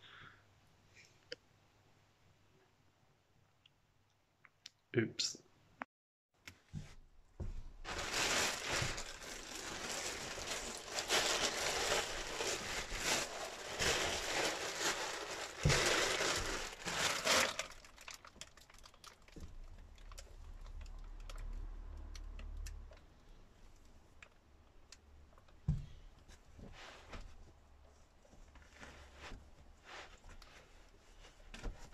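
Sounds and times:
plastic sheeting crinkling: 6.7s - 21.4s.

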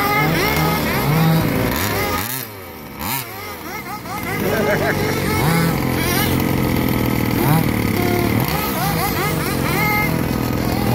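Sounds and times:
model car engine drone: 0.0s - 10.9s
people's voices: 7.8s - 9.4s.

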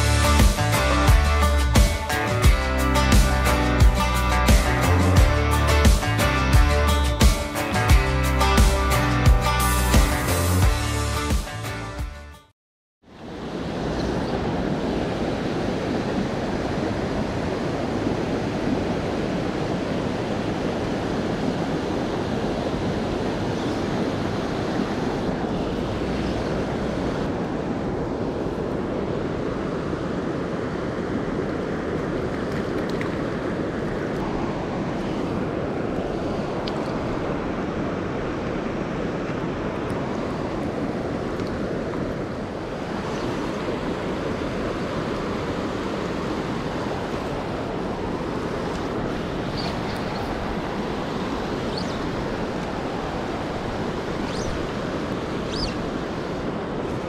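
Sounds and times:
flowing river water: 0.0s - 11.6s, 13.0s - 57.0s
wind buffeting the microphone: 13.6s - 57.0s.

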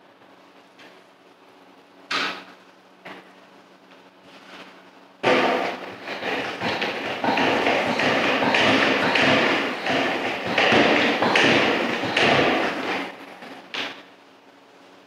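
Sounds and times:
mop scrubbing floor: 4.3s - 13.9s
sprayer hissing: 5.2s - 13.1s.

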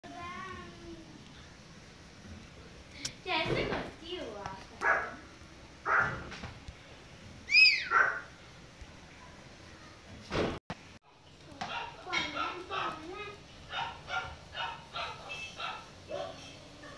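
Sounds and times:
puppy yipping and barking: 7.5s - 8.3s, 13.7s - 16.9s.

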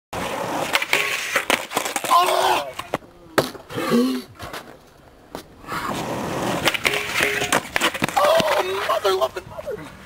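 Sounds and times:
skateboard wheels rolling on asphalt: 0.2s - 3.7s, 4.4s - 10.0s
skateboard clacks and knocks: 6.5s - 9.0s.

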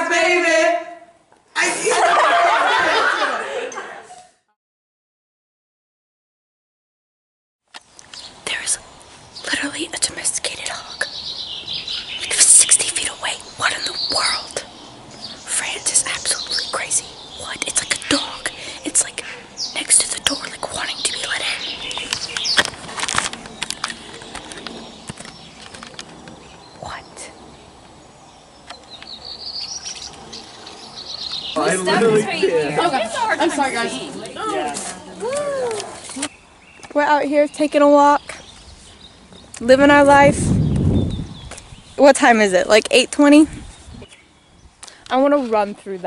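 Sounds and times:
birds chirping: 7.8s - 46.0s.

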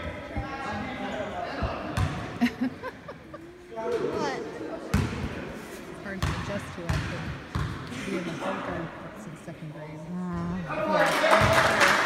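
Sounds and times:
basketball bouncing on wooden floor: 6.2s - 7.8s.

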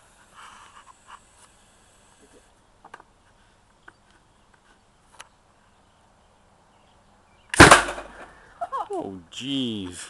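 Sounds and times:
potato gun bang: 7.5s - 8.3s
person exclaiming: 8.6s - 9.8s.

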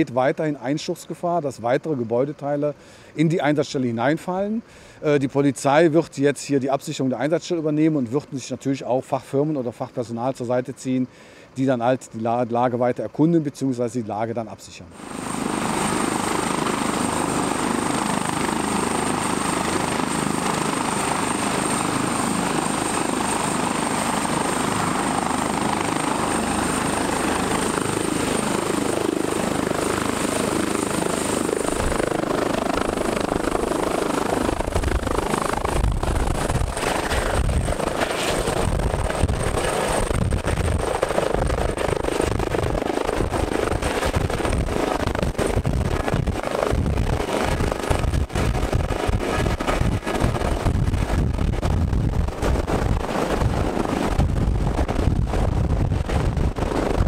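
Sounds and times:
helicopter turbine whine: 0.0s - 57.0s.

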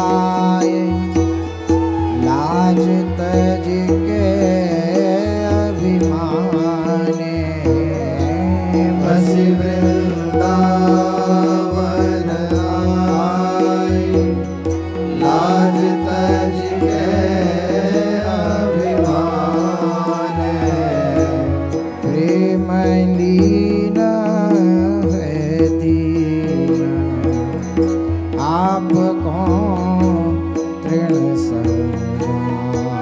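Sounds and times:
harmonium: 0.0s - 33.0s
man singing devotional song: 0.0s - 33.0s.

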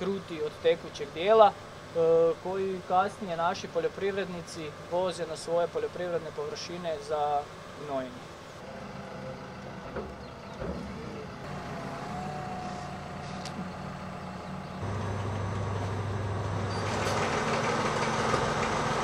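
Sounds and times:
tractor diesel engine running: 8.6s - 19.0s.

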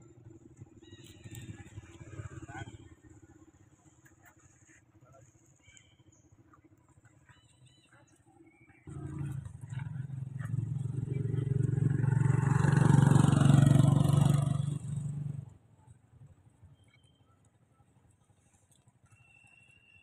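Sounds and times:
vehicle engine running: 0.0s - 18.5s.

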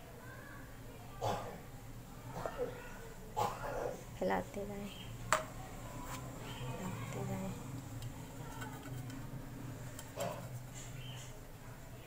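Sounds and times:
low steady hum: 0.0s - 12.0s
spoon stirring batter: 5.1s - 11.5s.

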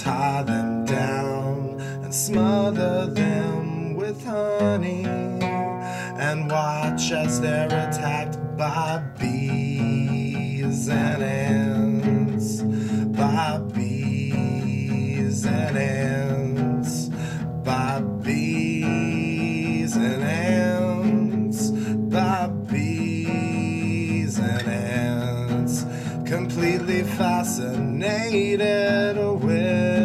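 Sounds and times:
acoustic guitar chords and melody: 0.0s - 30.0s.

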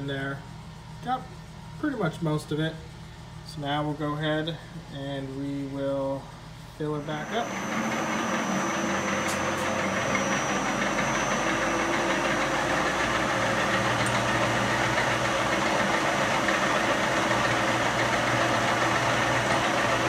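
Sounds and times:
lathe whirring: 5.9s - 20.0s.

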